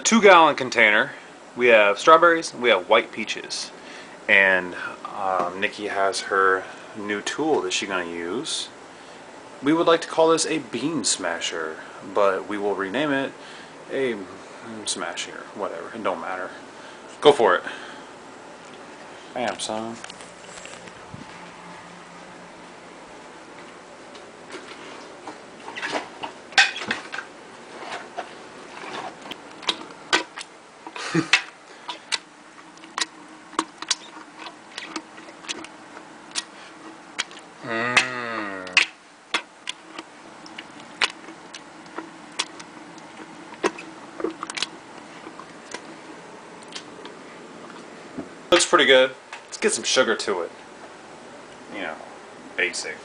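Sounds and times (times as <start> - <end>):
masher pounding fruit: 37.2 - 45.9.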